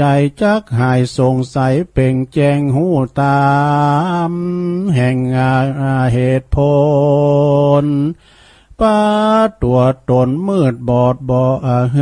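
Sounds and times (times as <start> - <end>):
breath: 8.2 - 8.8.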